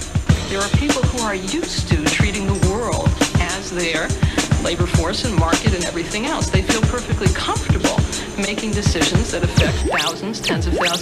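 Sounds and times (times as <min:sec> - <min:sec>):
hip-hop beat: 0:00.0 - 0:11.0
turntable scratches: 0:08.7 - 0:11.0.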